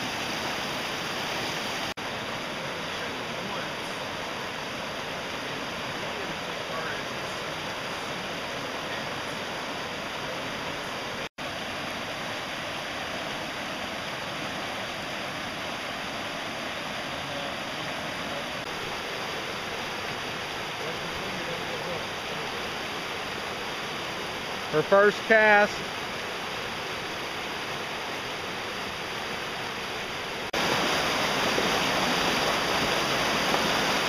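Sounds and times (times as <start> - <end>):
creek rushing over boulders: 0.0 - 34.0.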